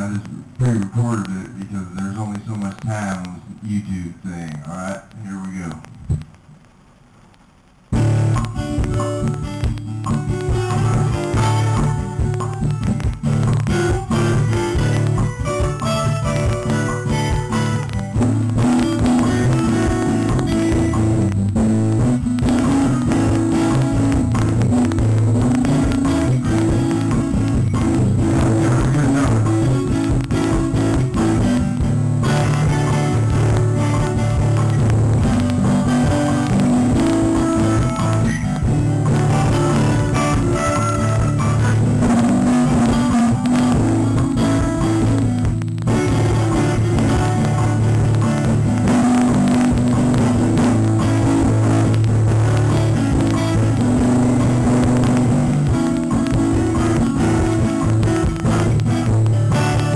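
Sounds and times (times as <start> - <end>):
acoustic guitar loop: 0.0 - 59.9
live strummed guitar: 7.9 - 59.9.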